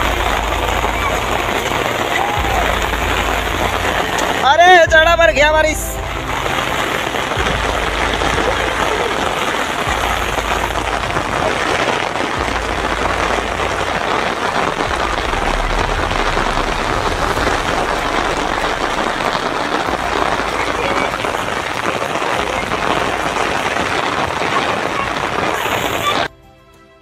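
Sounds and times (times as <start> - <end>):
heavy rain on umbrella: 0.0 - 26.3.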